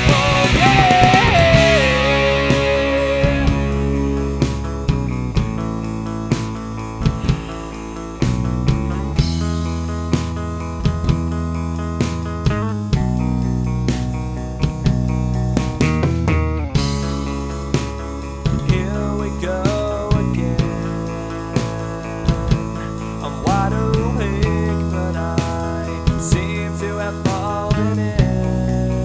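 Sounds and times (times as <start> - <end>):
drum hits: 0.0 - 13.2
bass guitar: 0.0 - 29.0
electric guitars playing chords: 0.0 - 29.0.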